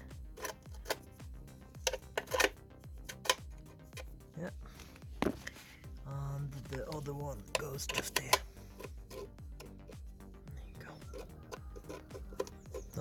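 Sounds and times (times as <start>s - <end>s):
metal parts clicking and tapping: 0.0s - 1.1s, 1.8s - 4.1s, 6.7s - 10.0s, 11.1s - 13.0s.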